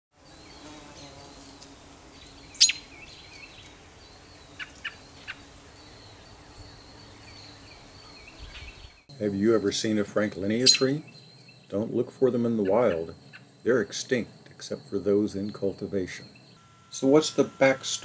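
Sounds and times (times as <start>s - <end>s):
birds calling: 0.3s - 18.0s
faint steady background: 1.6s - 18.0s.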